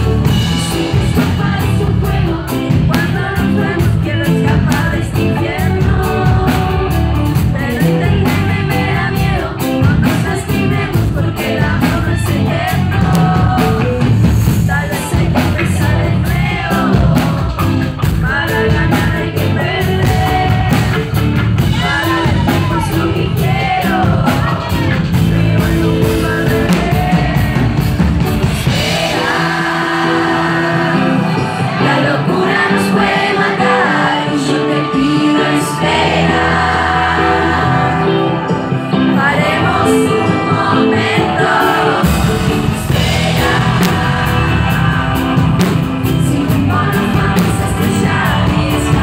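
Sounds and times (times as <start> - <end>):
woman singing into a microphone: 0.0 - 27.8, 28.7 - 49.0
pop-rock band playing: 0.0 - 49.0.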